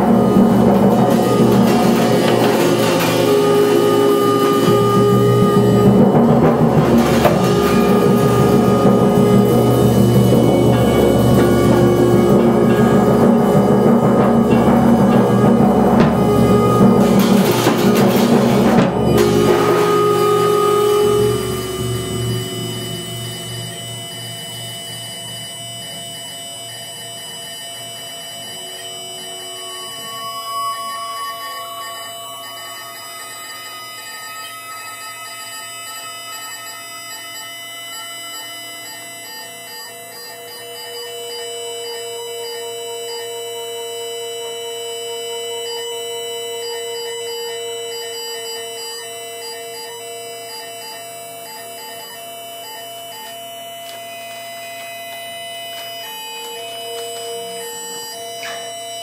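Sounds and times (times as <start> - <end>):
drum sounds: 0.0 - 26.2
tone sliding upward: 0.0 - 27.0, 53.8 - 59.0
held tones and drones: 0.0 - 59.0.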